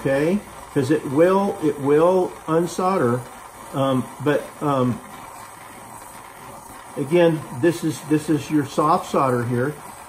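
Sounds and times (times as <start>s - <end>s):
soldering torch hissing: 0.0s - 10.0s.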